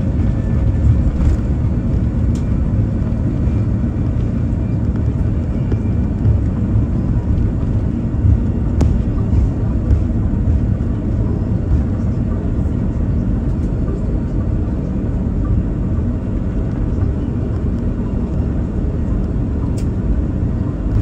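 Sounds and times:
deep rumble of engines and wheels: 0.0 - 21.0.

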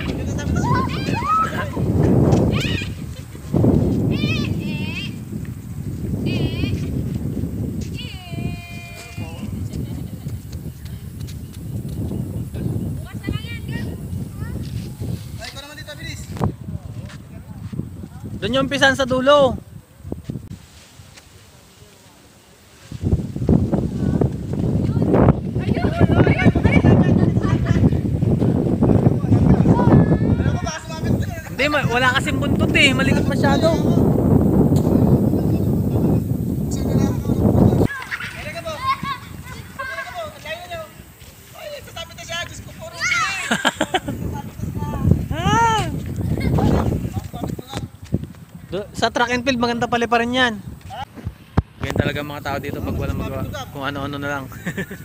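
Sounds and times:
wind buffeting microphone: 0.0 - 21.2, 22.9 - 55.0.

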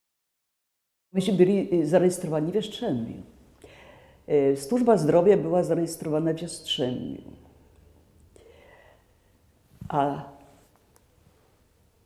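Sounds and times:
woman speaking: 1.2 - 3.4, 4.3 - 7.5, 9.8 - 10.6
faint breath: 3.6 - 4.3, 8.4 - 9.5.

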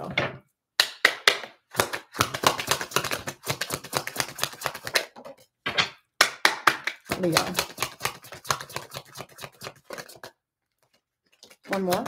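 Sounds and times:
cards being shuffled: 1.7 - 5.2, 6.9 - 12.0.

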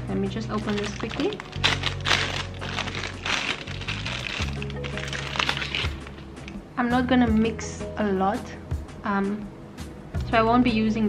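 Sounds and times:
background music: 0.0 - 11.0
plastic bag crinkling: 0.5 - 6.2.

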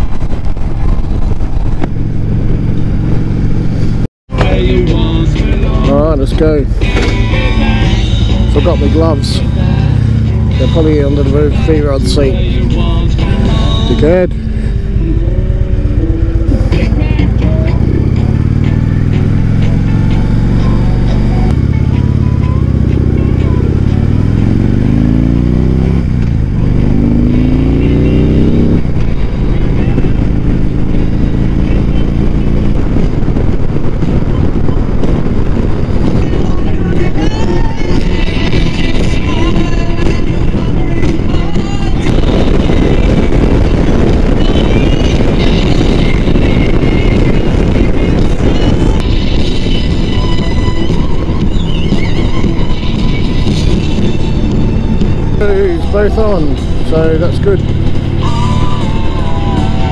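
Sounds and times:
motorcycle engine revving: 0.0 - 59.9
wind noise on microphone: 0.0 - 59.9.

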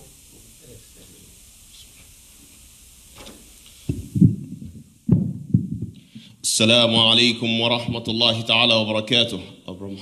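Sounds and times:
microphone handling thumps: 3.2 - 6.3.

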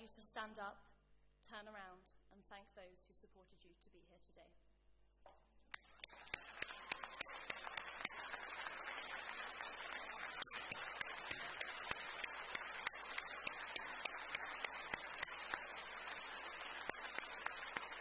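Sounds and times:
crowd applauding: 5.8 - 18.0.

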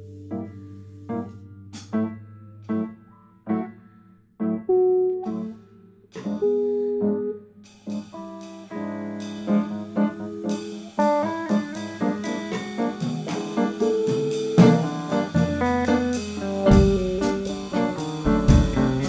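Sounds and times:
electric guitar: 0.0 - 19.0
jazz piano: 0.0 - 19.0
drums with cymbals: 7.7 - 19.0.

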